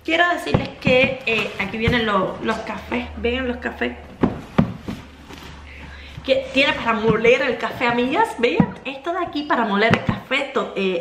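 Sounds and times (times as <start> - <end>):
faint rustling: 3.9 - 8.9
cardboard box knocks and thumps: 4.1 - 5.4, 6.8 - 8.8.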